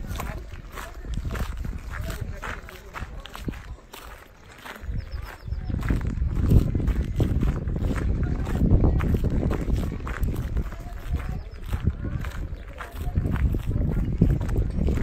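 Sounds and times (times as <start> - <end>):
footsteps on pavement: 0.0 - 15.0
voices of people: 0.0 - 15.0.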